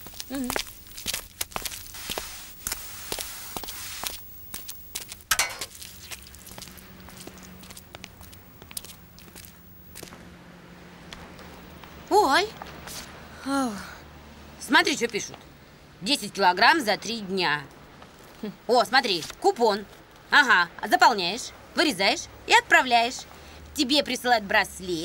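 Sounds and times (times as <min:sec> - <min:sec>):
faint steady hum: 0:00.0 - 0:25.0.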